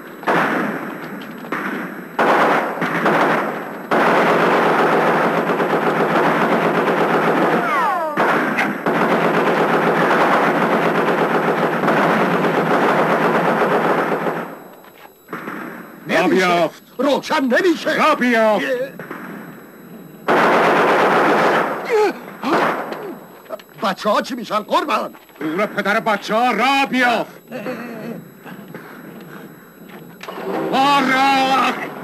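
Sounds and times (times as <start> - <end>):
machine-gun fire: 0.0 - 14.6, 15.3 - 16.6, 18.0 - 23.0, 28.7 - 32.0
short falling whine: 25.4 - 32.0.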